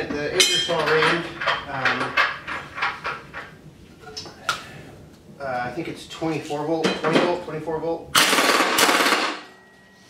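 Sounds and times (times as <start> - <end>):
pneumatic impact wrench hammering: 8.2 - 9.4.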